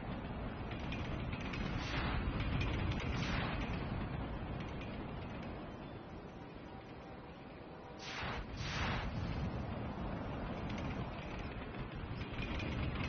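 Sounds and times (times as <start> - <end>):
mechanical rushing sound effect: 1.6 - 4.2, 8.0 - 11.2.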